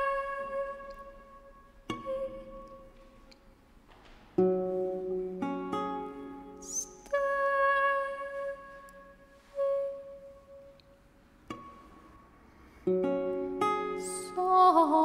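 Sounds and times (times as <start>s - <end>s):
woman singing: 0.0s - 3.2s, 6.6s - 10.4s, 14.0s - 15.0s
lute plucked chords: 4.4s - 7.8s, 12.9s - 15.0s.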